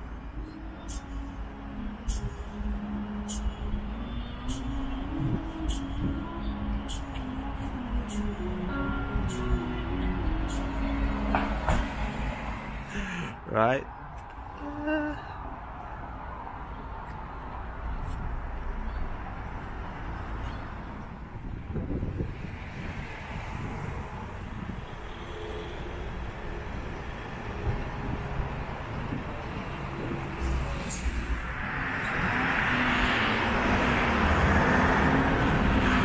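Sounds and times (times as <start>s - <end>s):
background music: 0.0s - 13.3s
street traffic rumble: 0.0s - 36.0s
car passing: 9.5s - 36.0s.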